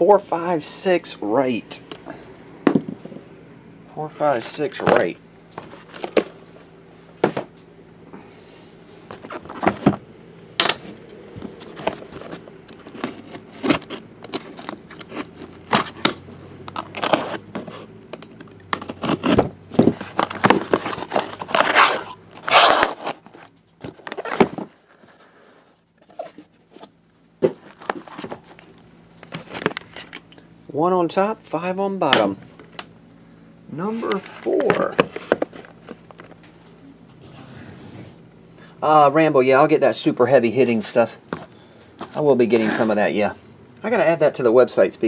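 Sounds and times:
cardboard flaps scraping and knocking: 0:09.2 - 0:10.0, 0:18.8 - 0:25.2
packing tape tearing: 0:11.6 - 0:25.0.

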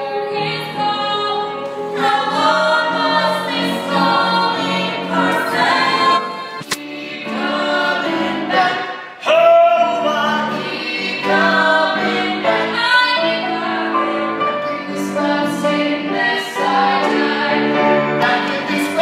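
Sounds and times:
voices singing together: 0:00.0 - 0:19.0
sharp click: 0:06.6 - 0:06.9.

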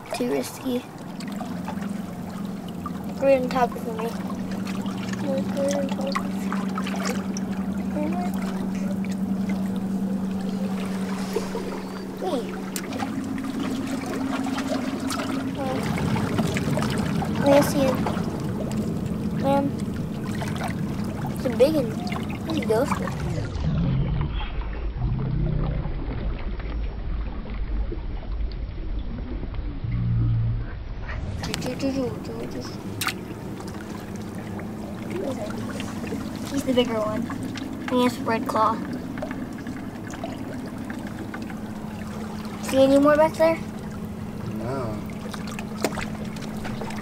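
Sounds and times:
seawater sloshing between rocks: 0:00.0 - 0:24.9, 0:31.2 - 0:47.0
low steady hum: 0:00.0 - 0:47.0
water washing among rocks: 0:10.4 - 0:19.7.

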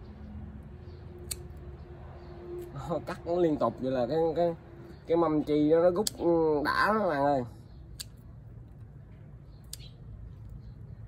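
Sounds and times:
pruning scissors snipping: 0:01.2 - 0:01.7, 0:05.8 - 0:06.4, 0:07.9 - 0:08.2.

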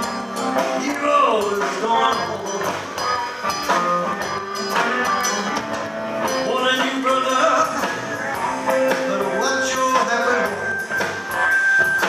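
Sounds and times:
blues-rock band playing live: 0:00.0 - 0:12.0.

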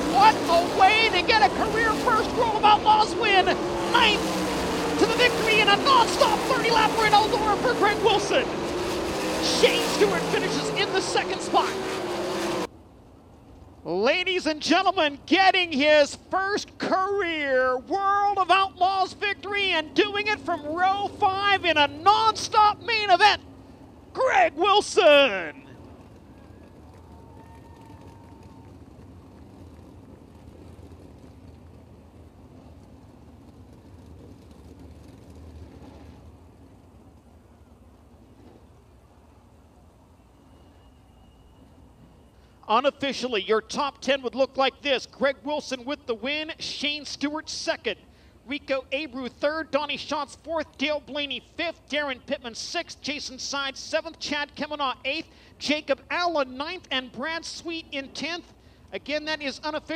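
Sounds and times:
man speaking over public address: 0:00.0 - 0:12.6, 0:13.8 - 0:23.5, 0:24.1 - 0:25.7, 0:42.6 - 0:59.9
sprint car engines roaring: 0:00.0 - 0:59.9.

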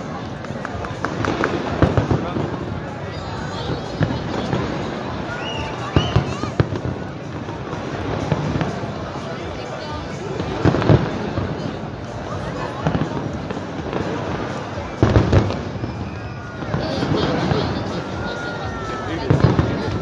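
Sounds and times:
crowd chatter: 0:00.0 - 0:20.0
fireworks bangs: 0:00.0 - 0:20.0
fireworks crackling: 0:00.0 - 0:20.0.

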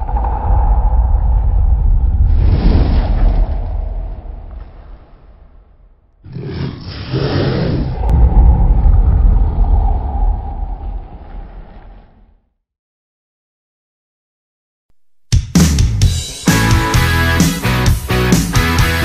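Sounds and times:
whoosh: 0:00.0 - 0:06.0, 0:07.8 - 0:12.4
deep rumble: 0:00.0 - 0:06.3, 0:07.5 - 0:12.6.

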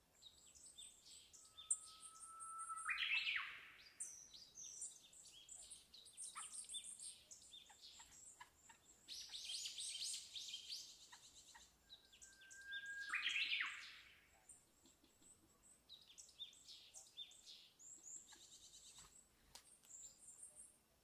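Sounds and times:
birds chirping: 0:00.2 - 0:19.2.

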